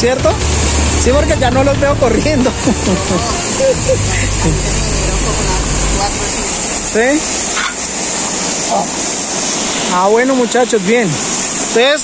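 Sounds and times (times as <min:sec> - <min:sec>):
waterfall rushing into pool: 0:00.0 - 0:12.0
low rumble: 0:00.4 - 0:08.7
voices: 0:01.0 - 0:09.0.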